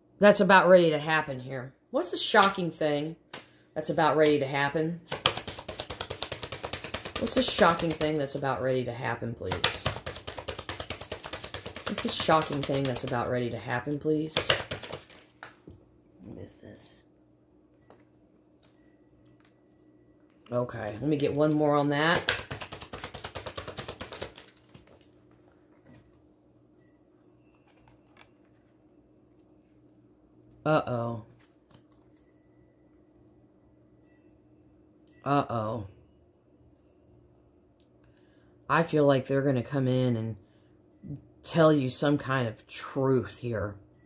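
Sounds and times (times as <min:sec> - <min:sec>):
cards being shuffled: 0:05.1 - 0:08.2, 0:09.5 - 0:13.3, 0:14.3 - 0:15.6, 0:20.7 - 0:25.2.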